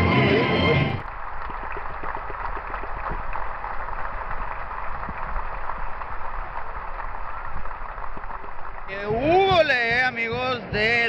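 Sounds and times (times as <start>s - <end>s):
stadium crowd applauding: 0.1s - 11.0s.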